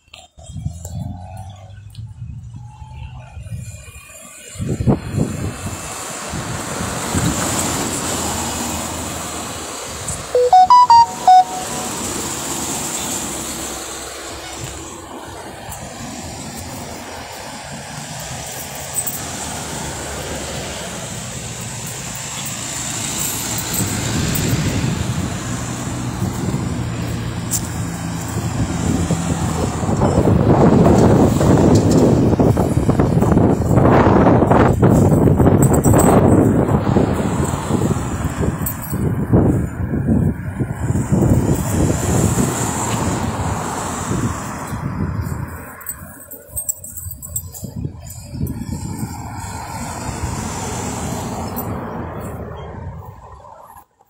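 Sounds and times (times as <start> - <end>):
cars driving past: 0.0 - 54.0
short loud beeps: 10.4 - 12.0.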